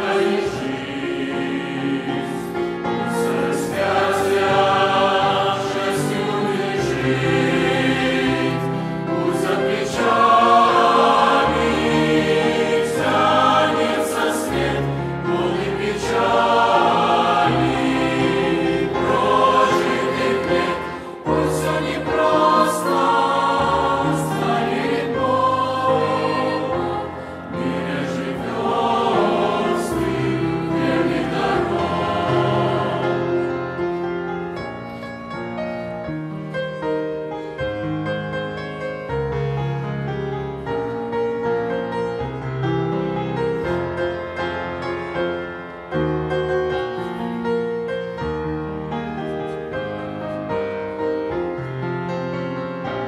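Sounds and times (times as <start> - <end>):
mixed choir singing a hymn: 0.0 - 34.7, 52.1 - 53.0.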